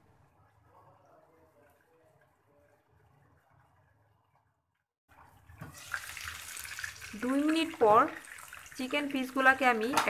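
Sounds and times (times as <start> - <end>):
chicken sizzling in hot oil: 5.6 - 10.0.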